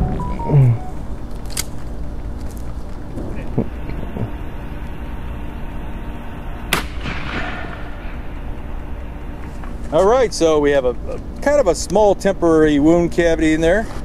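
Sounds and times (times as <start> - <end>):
man laughing: 0.3 - 0.9, 3.2 - 4.4
shotgun shot with rolling echo: 6.7 - 8.0.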